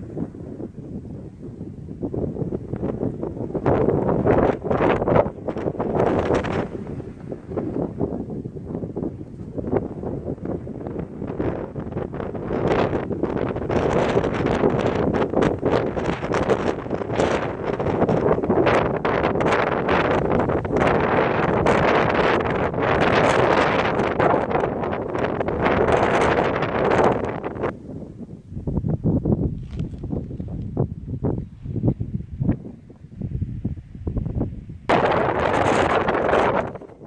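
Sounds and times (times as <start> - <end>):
wind buffeting microphone: 0.0 - 37.0.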